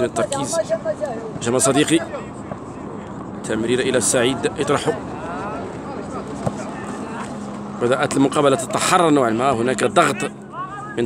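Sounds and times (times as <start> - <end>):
distant players shouting: 0.0 - 9.0, 9.6 - 11.0.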